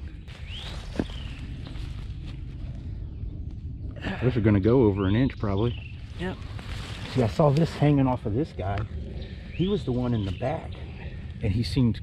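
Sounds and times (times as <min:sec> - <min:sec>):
rustling of dead leaves: 0:00.0 - 0:03.2, 0:05.2 - 0:11.7.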